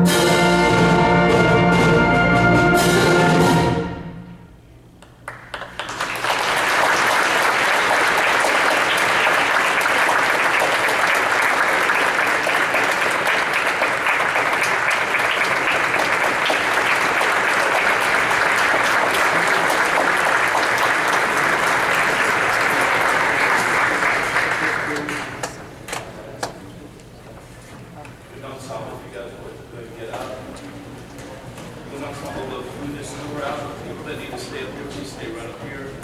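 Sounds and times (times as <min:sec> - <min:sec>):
audience applauding: 0:05.0 - 0:26.0.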